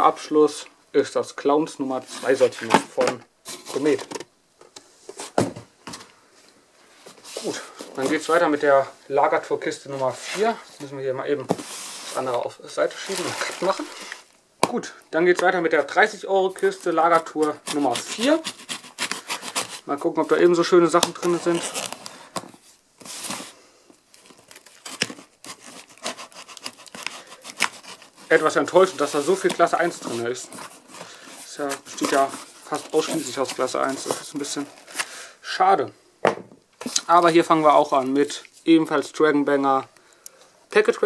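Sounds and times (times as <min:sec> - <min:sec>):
cardboard flaps scraping: 0:02.0 - 0:04.2, 0:11.4 - 0:14.3, 0:24.9 - 0:35.0
boxes knocking and rustling: 0:02.1 - 0:06.1, 0:11.4 - 0:14.2, 0:24.3 - 0:34.7
packing tape tearing: 0:17.6 - 0:19.8, 0:21.0 - 0:22.1, 0:24.2 - 0:29.8.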